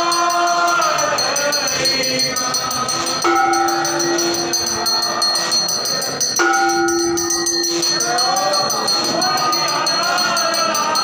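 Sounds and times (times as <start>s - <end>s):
bell rung rapidly: 0.0s - 11.0s
devotional singing: 0.0s - 11.0s.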